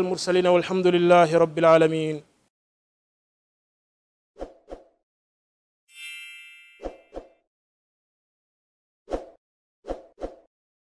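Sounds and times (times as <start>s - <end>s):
bright ringing chime: 5.9s - 7.2s.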